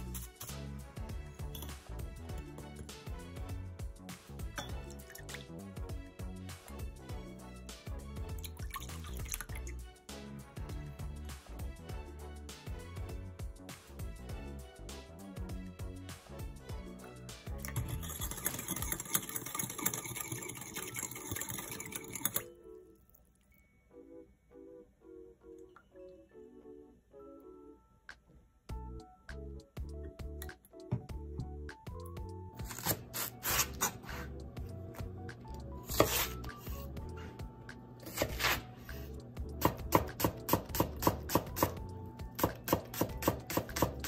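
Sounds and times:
background music: 0.0 - 44.0
knife slicing leek: 32.6 - 34.3, 35.8 - 36.6, 38.0 - 38.7.

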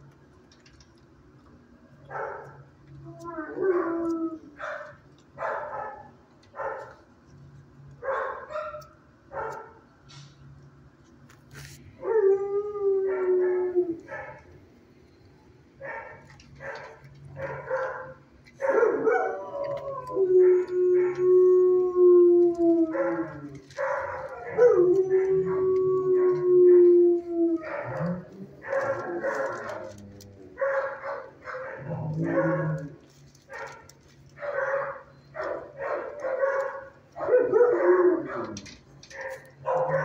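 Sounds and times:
dogs howling: 3.2 - 6.9, 12.0 - 14.5, 15.8 - 40.0
dogs barking quickly: 15.8 - 19.5, 22.9 - 25.5, 27.6 - 40.0.

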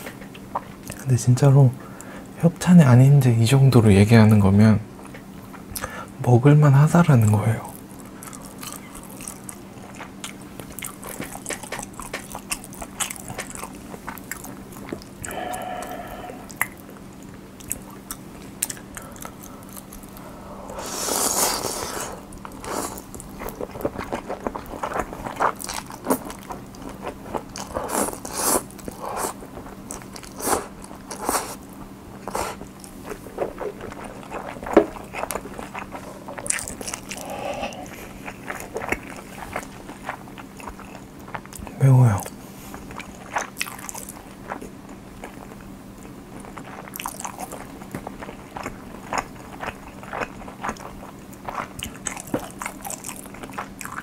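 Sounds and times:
wet chewing and mouth smacks: 7.8 - 20.2, 22.2 - 54.0
slurping noodles: 20.7 - 23.1, 32.3 - 38.5.

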